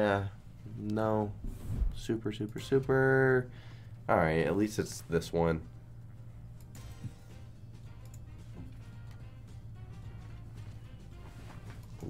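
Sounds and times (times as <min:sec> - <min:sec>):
slot game background music: 0:02.2 - 0:12.0.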